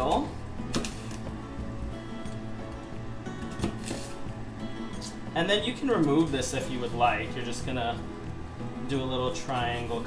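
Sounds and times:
background music: 0.0s - 10.0s
knife cutting through apple: 0.7s - 1.3s, 3.4s - 4.2s.

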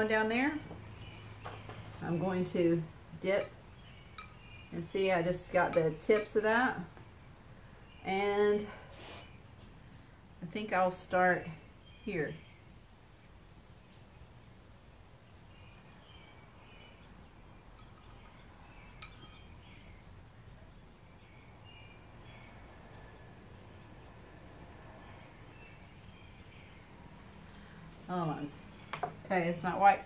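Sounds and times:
small birds chirping: 0.0s - 30.0s.

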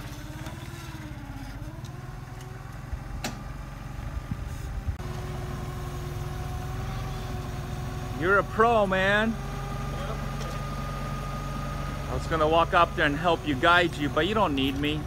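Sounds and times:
forklift engine running: 0.0s - 15.0s.

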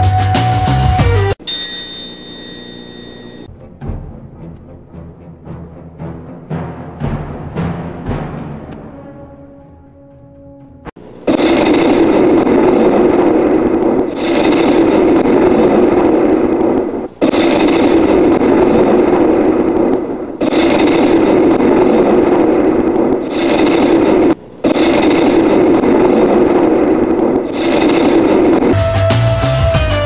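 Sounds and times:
loud dense rumble: 11.0s - 29.4s.

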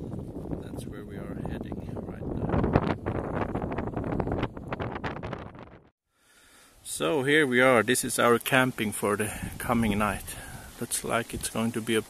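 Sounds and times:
wind buffeting microphone: 0.0s - 5.9s.

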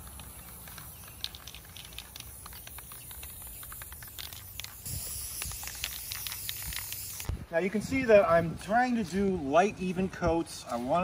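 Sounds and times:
spray can hissing: 0.0s - 7.3s
spray can ticks and clicks: 0.0s - 7.4s.

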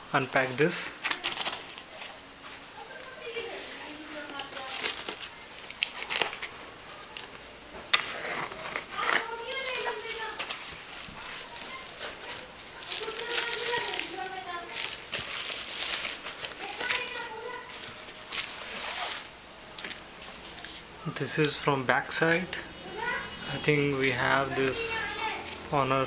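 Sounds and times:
bubble wrap and cardboard rustling: 0.4s - 20.9s.

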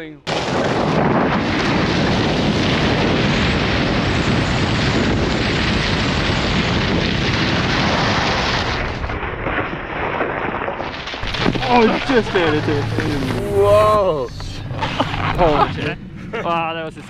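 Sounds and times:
wind buffeting microphone: 0.3s - 8.5s.

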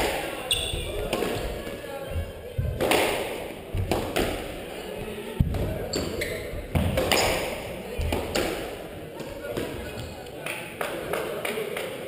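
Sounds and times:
squash ball hit by rackets: 2.6s - 4.5s, 6.6s - 8.7s.

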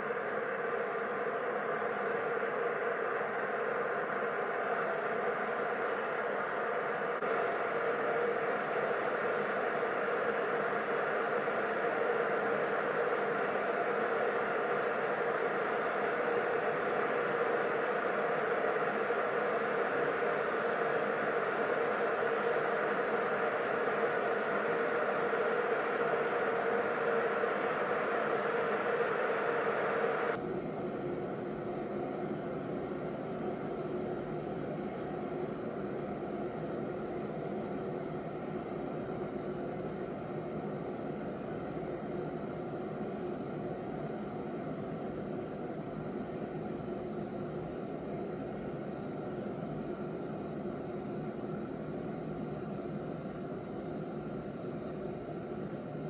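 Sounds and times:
kettle heating water hiss: 0.0s - 56.0s.

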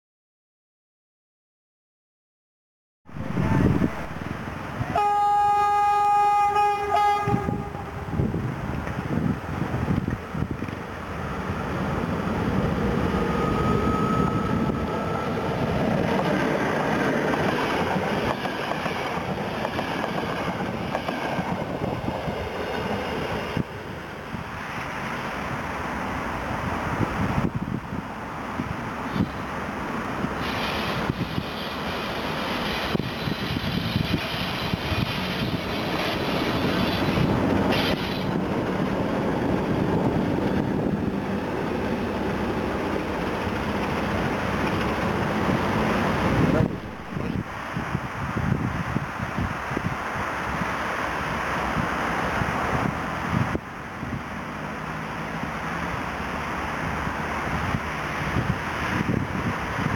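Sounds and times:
train horn: 3.2s - 4.2s, 4.8s - 8.2s.

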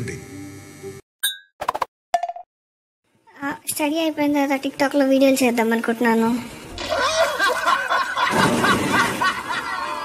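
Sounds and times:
person laughing: 6.8s - 10.0s.

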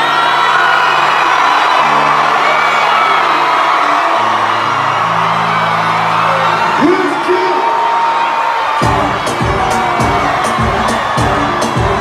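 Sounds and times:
crowd cheering and screaming: 0.0s - 12.0s
live concert music with low bass: 0.0s - 12.0s.

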